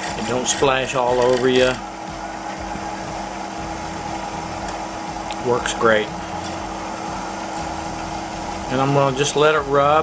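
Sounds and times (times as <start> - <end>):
paper towel rubbing spinning wood: 0.0 - 10.0
wood lathe motor hum: 0.0 - 10.0.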